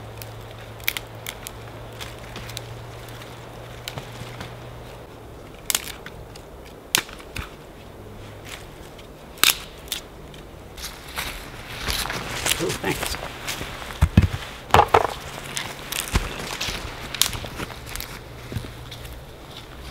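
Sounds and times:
dry twigs snapping: 0:00.0 - 0:07.7, 0:08.4 - 0:19.9.

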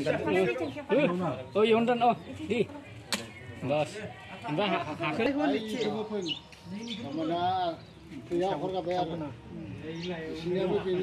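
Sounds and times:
bird chirp: 0:04.8 - 0:11.0.

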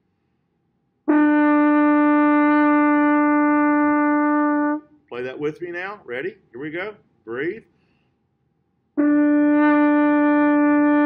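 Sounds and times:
french horn long steady note: 0:09.0 - 0:11.0.

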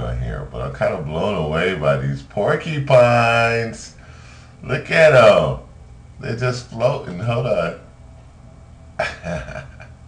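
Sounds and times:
man's throaty vocal noise: 0:09.0 - 0:10.0.

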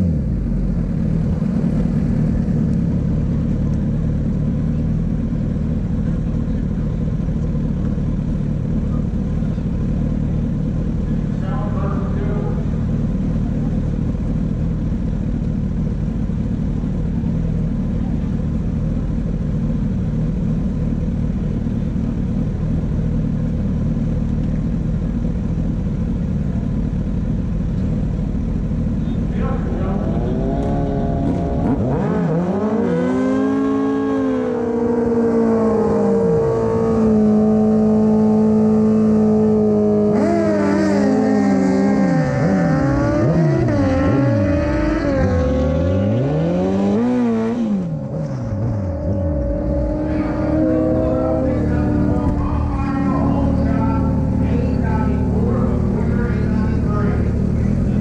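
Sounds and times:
motorcycle engines idling: 0:00.0 - 0:46.3, 0:47.0 - 0:58.0
motorcycle engine revving: 0:00.0 - 0:58.0.

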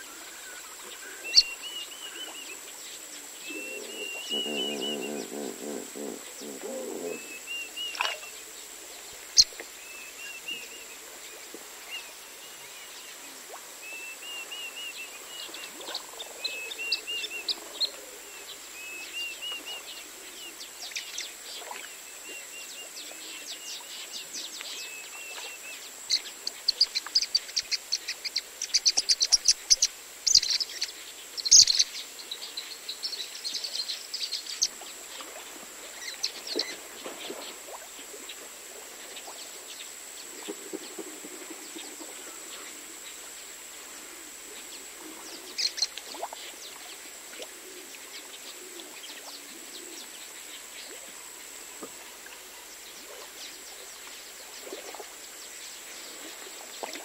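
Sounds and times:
birds chirping: 0:03.5 - 0:08.2
birds chattering: 0:03.7 - 0:07.4.

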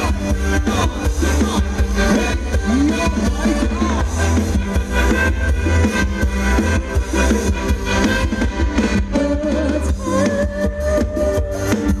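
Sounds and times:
amplified dance band music: 0:00.0 - 0:12.0.

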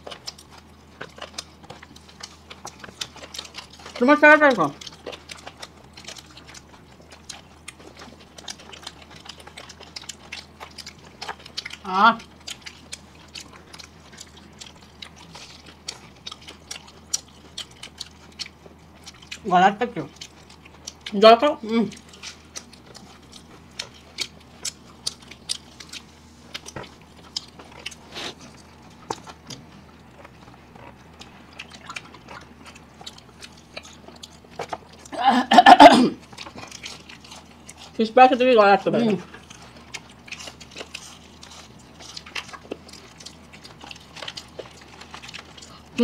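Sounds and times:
chewing and biting food: 0:00.0 - 0:46.0
voiced hum: 0:00.0 - 0:46.0
person speaking: 0:38.0 - 0:39.3.

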